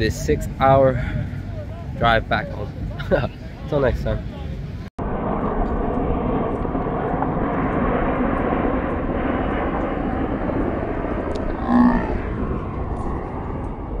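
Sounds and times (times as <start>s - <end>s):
jet engine rush: 0.0s - 14.0s.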